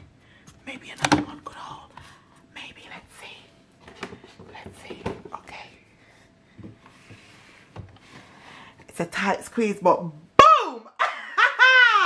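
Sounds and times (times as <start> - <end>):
woman laughing aloud: 10.9 - 12.0.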